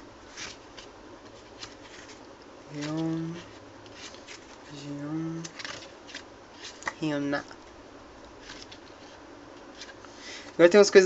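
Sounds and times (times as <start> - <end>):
photobook pages turning: 0.2 - 7.1, 8.4 - 10.6.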